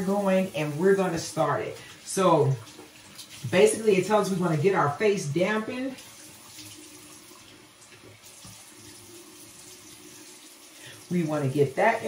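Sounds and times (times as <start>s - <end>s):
faucet running into basin: 0.0s - 12.0s.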